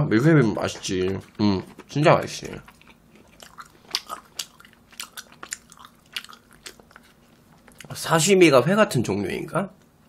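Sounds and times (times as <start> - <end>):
man chewing meat: 0.2 - 8.0.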